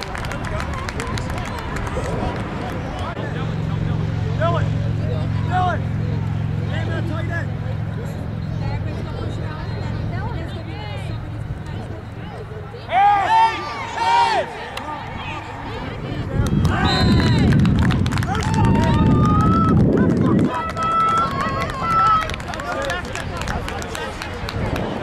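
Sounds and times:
crowd shouting and cheering: 11.8 - 25.0.

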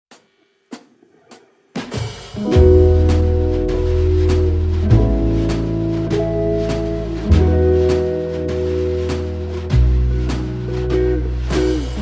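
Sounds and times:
drums and band playing: 0.1 - 12.0.

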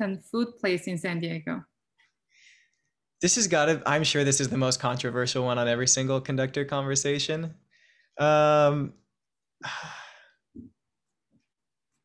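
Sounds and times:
person sighing: 9.6 - 10.7.

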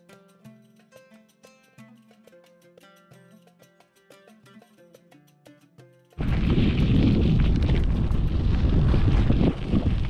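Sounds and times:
wind buffeting microphone: 6.2 - 10.0.

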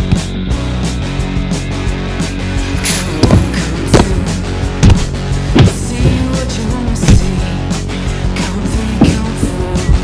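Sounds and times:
backing music with strong beat: 0.0 - 10.0.

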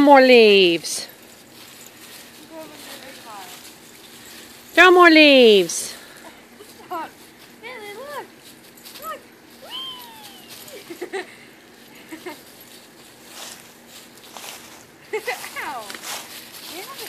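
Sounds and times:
dry leaves rustling: 0.0 - 17.0
woman laughing and exclaiming: 9.6 - 11.4, 15.1 - 15.9.

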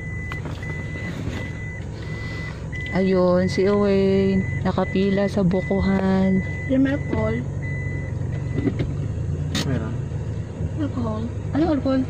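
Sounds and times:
reversing alarm beeping: 0.0 - 8.8.

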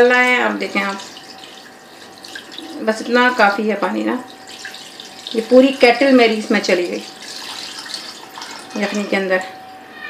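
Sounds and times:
water pouring into pot: 0.0 - 9.4.

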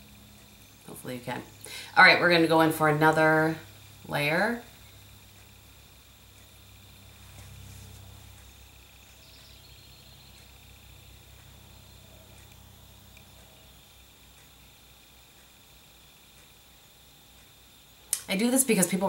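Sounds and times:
faint birds chirping: 0.0 - 18.1
low hum: 0.0 - 19.0.

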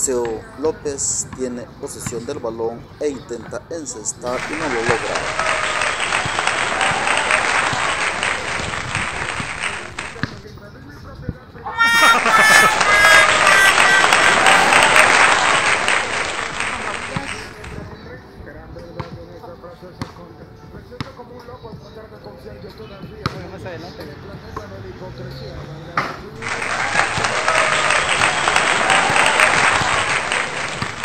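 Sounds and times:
court sounds: 4.2 - 10.6, 11.7 - 18.0, 26.0 - 31.0
applause: 4.3 - 10.4, 11.8 - 17.8, 26.4 - 31.0
laughter: 11.8 - 15.6
music: 17.6 - 26.8.

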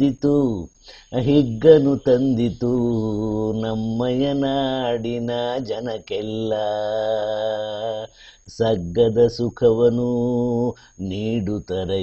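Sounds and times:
man singing folk song: 0.0 - 12.0.

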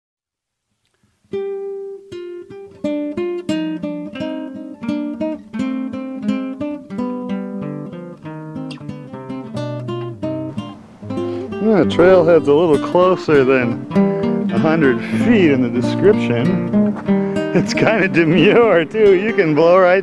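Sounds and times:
acoustic guitar picking: 1.3 - 20.0.

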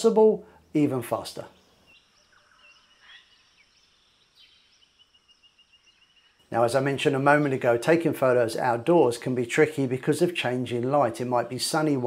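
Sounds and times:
distant birds chirping: 0.0 - 12.0.

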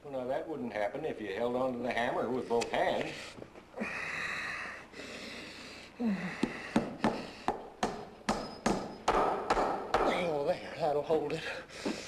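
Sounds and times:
hammer driving nails: 6.8 - 10.2.

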